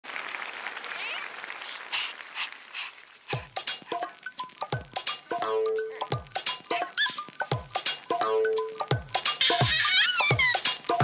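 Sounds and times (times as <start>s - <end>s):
audience applauding: 0.0s - 3.9s.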